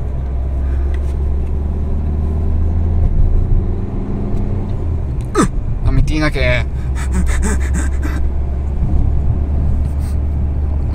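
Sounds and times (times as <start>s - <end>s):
car engine and road noise: 0.0s - 10.9s.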